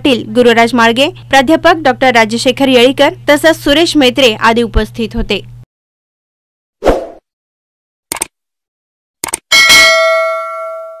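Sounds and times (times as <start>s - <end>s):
double mouse click: 8.1s - 8.3s, 9.2s - 9.4s
bell chime ringing out: 9.5s - 11.0s.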